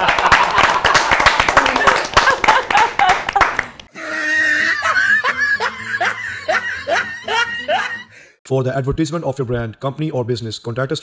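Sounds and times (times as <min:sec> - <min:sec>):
person laughing: 0:00.0 - 0:08.1.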